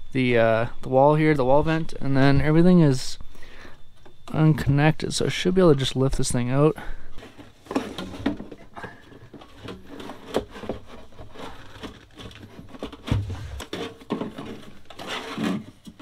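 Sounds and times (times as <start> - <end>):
heater housing knocking and scraping: 13.0 - 14.1
dull thump: 13.1 - 13.9.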